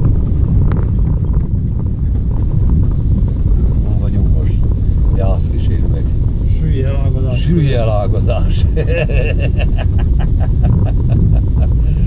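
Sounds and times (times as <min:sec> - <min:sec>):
tyres rumbling on rough road: 0:00.0 - 0:12.0.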